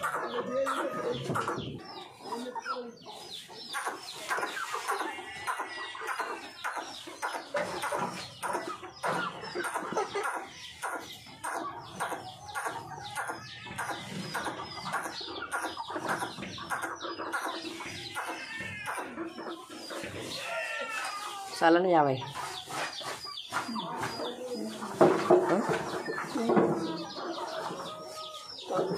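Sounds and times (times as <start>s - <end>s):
chickens clucking and calling: 0.0s - 28.9s.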